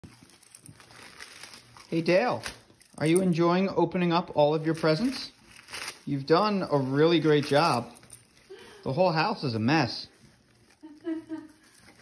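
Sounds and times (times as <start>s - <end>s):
wrapping paper crinkling and tearing: 0.0s - 3.6s, 4.3s - 12.0s.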